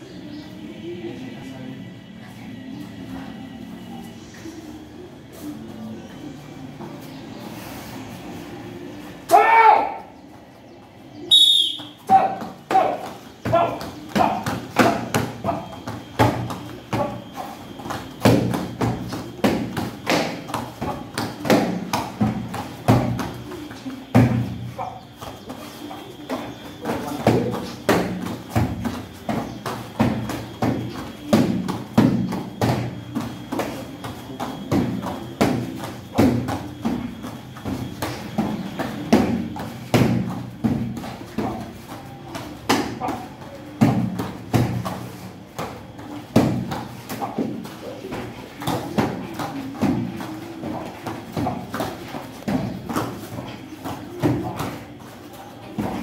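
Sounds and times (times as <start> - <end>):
feet thumping on foam mats: 11.3 - 56.0.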